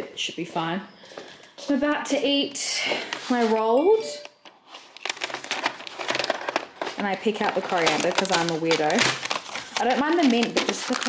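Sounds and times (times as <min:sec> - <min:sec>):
cardboard box crinkling and clicking: 0:04.8 - 0:11.0.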